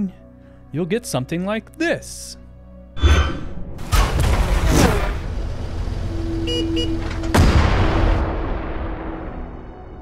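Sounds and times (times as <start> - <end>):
deep boom: 7.4 - 9.8.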